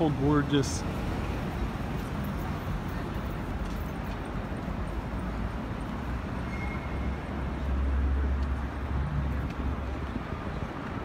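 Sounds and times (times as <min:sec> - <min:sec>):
city street traffic rumble: 0:00.0 - 0:11.0.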